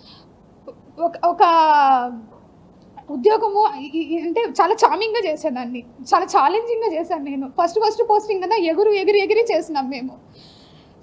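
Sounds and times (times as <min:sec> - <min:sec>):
woman speaking: 0:01.0 - 0:02.4, 0:03.0 - 0:10.2.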